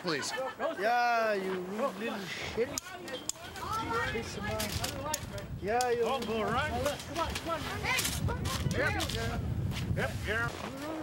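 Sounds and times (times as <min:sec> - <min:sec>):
people talking: 0:00.0 - 0:09.4.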